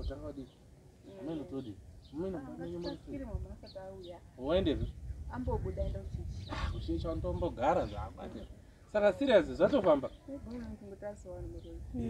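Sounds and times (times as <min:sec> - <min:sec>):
wind rumble on microphone: 0:00.0 - 0:00.4, 0:02.0 - 0:08.6, 0:09.2 - 0:12.0.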